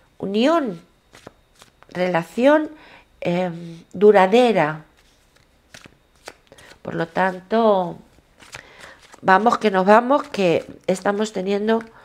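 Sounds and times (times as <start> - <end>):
person talking: 1.9 - 4.9, 6.9 - 8.1, 9.2 - 11.9
cards clicking and rustling: 5.0 - 7.4, 8.4 - 11.3.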